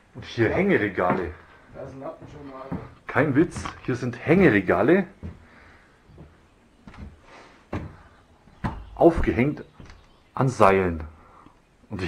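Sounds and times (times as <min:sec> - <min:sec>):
wooden shelf knocking: 0:06.2 - 0:08.0, 0:08.6 - 0:10.1.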